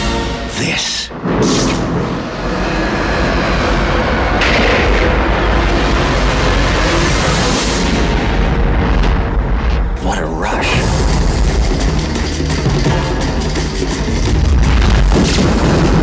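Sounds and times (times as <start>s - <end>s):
cinematic rumble with heavy bass: 0.0s - 16.0s.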